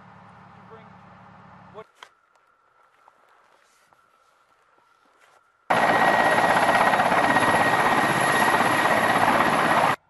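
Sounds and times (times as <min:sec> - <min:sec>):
helicopter rotor and turbine noise: 0:05.7 - 0:10.0
high whine: 0:05.7 - 0:10.0.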